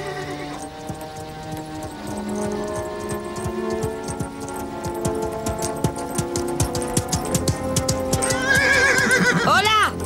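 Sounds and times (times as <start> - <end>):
horse hoofbeats galloping: 0.0 - 10.0
music with sustained notes: 0.0 - 10.0.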